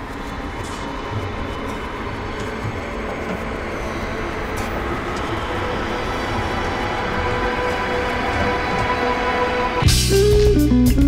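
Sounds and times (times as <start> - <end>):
dense train-like rumbling: 0.0 - 11.0.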